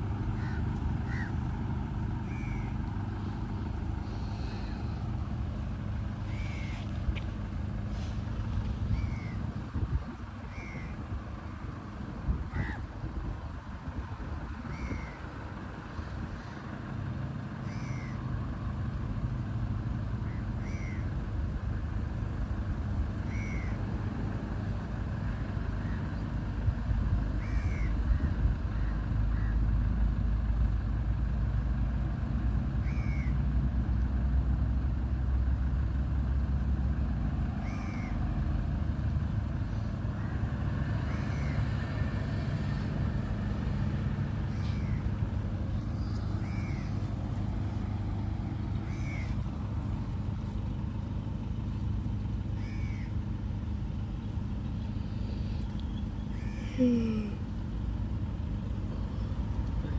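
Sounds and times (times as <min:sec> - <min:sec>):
distant jet airliner rumble: 0:00.0 - 0:34.3, 0:36.6 - 0:59.9
bird calling: 0:00.2 - 0:01.5, 0:02.2 - 0:02.9, 0:06.1 - 0:07.2, 0:08.8 - 0:09.6, 0:10.4 - 0:11.1, 0:12.5 - 0:12.9, 0:14.6 - 0:15.3, 0:17.6 - 0:18.3, 0:20.2 - 0:21.1, 0:23.2 - 0:23.9, 0:27.4 - 0:29.6, 0:32.8 - 0:33.4, 0:37.6 - 0:38.2, 0:41.0 - 0:41.8, 0:44.3 - 0:47.4, 0:48.7 - 0:49.5, 0:52.4 - 0:53.3, 0:54.0 - 0:57.5.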